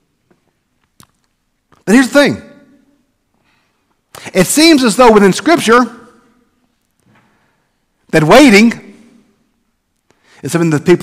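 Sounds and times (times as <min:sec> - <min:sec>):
man speaking: 0:01.8 - 0:02.8, 0:04.2 - 0:06.3, 0:08.1 - 0:09.3, 0:10.4 - 0:11.0.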